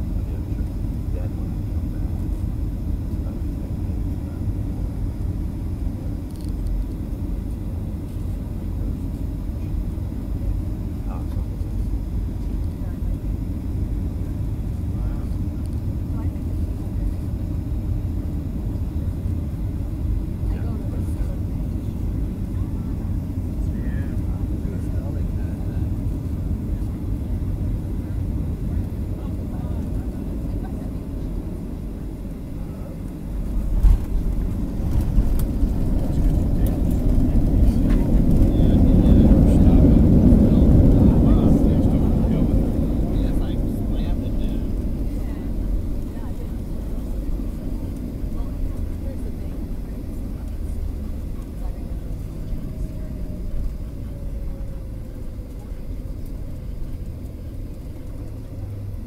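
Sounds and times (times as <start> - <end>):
airliner cabin engine rumble: 0.0 - 59.0.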